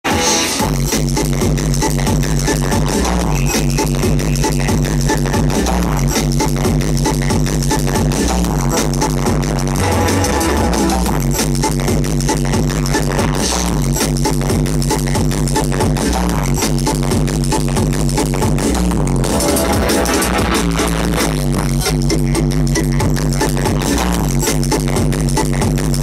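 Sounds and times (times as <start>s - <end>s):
drum and bass music: 0.0s - 26.0s.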